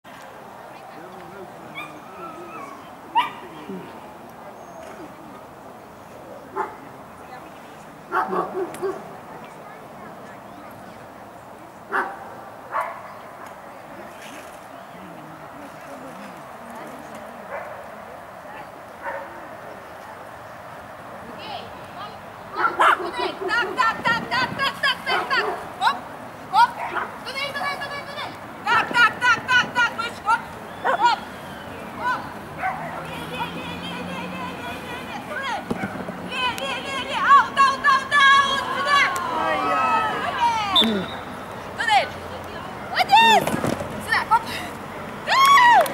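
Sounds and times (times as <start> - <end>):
small dog barking: 2.6 - 3.5, 8.1 - 9.0, 11.9 - 13.2, 22.6 - 23.1, 32.6 - 33.0.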